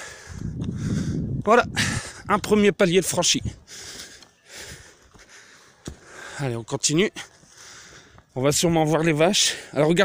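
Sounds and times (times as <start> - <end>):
person breathing hard: 0.0 - 2.3, 3.6 - 6.4, 7.4 - 8.3.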